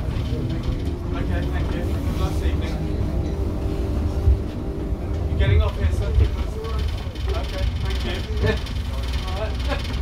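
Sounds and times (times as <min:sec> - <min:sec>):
diesel bus engine rumbling: 0:00.0 - 0:10.0.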